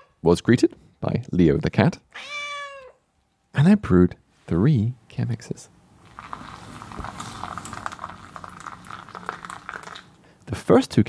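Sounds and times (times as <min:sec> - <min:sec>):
kettle water bubbling: 0:06.0 - 0:10.2
small crackles: 0:06.0 - 0:10.2.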